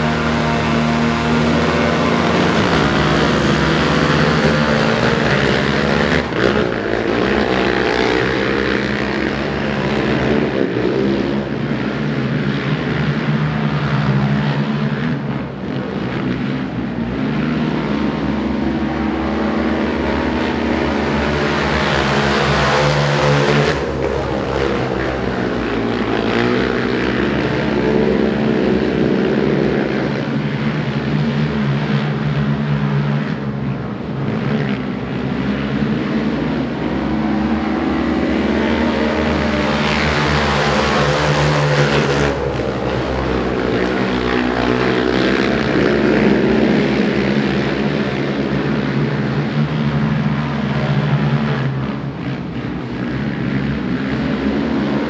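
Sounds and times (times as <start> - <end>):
racing quad engines: 0.0 - 55.0.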